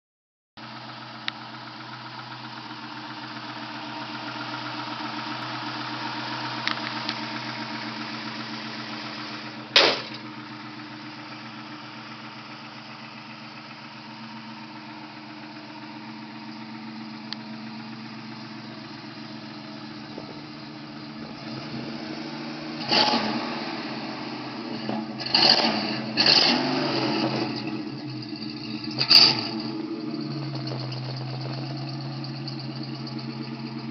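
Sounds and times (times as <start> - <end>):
car engine idling: 0.6 - 33.9
sharp bang: 9.8 - 10.3.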